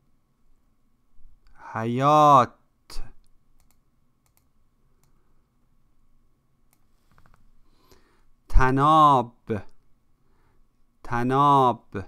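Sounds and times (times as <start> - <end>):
man speaking: 1.6 - 3.2, 8.5 - 9.8, 11.0 - 12.0
mouse clicks: 3.6 - 5.2.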